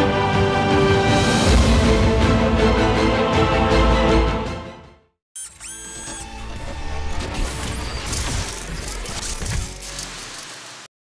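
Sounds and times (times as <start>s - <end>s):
music: 0.0s - 5.2s, 6.1s - 10.1s
mechanical clatter: 7.3s - 10.8s.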